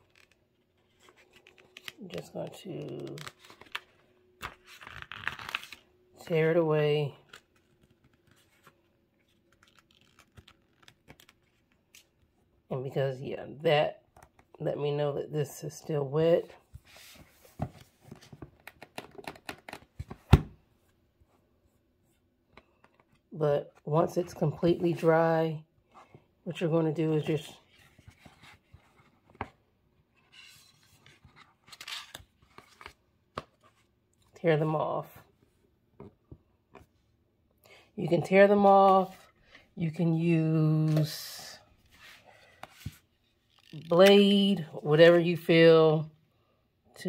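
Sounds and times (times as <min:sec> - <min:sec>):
paper rustling and peeling: 0:02.9 - 0:05.8, 0:07.2 - 0:12.2
paper rustling and sliding: 0:16.7 - 0:18.4, 0:41.8 - 0:43.6.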